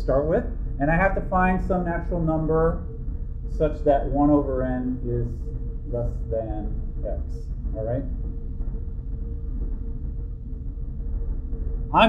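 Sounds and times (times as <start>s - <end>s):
faint even hum: 0.0s - 12.0s
low rumble: 0.0s - 12.0s.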